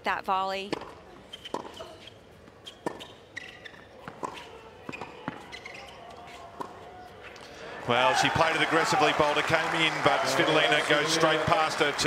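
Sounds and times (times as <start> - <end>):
tennis ball hit with rackets: 0.7 - 2.0, 2.8 - 5.5.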